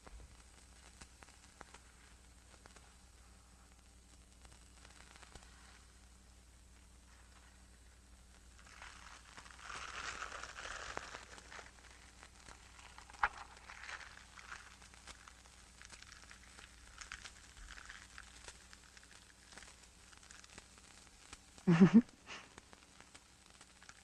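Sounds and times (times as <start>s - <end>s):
faint rustling: 0.0s - 21.0s.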